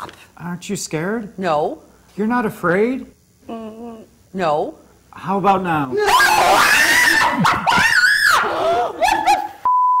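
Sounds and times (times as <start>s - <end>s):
young woman screaming: 5.9s - 9.4s.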